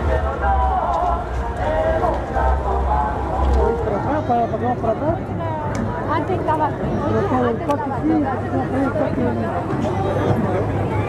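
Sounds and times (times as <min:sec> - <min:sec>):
low rumble: 0:00.0 - 0:04.3.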